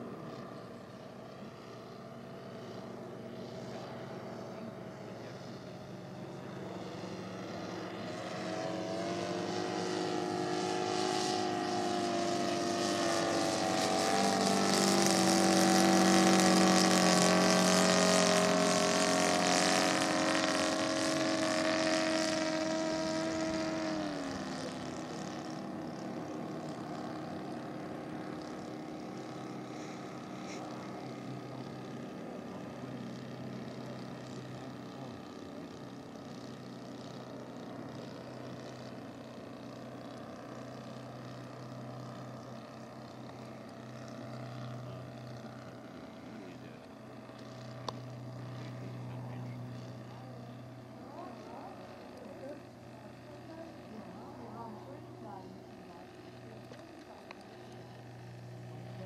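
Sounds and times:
model plane radial engine running: 0.0 - 59.0.

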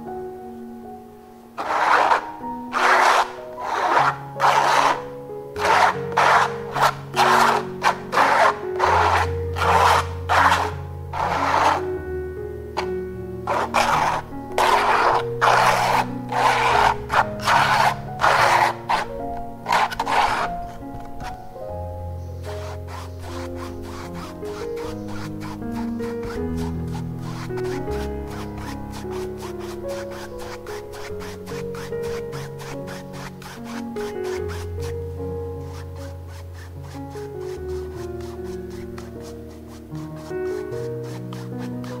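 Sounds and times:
soft background music: 0.0 - 42.0
palette knife scraping paint on canvas: 1.6 - 12.0, 12.8 - 21.4, 22.2 - 42.0.

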